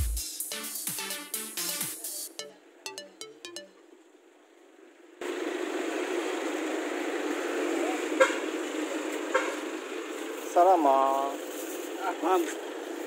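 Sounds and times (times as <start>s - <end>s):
passing traffic: 1.6s - 13.0s.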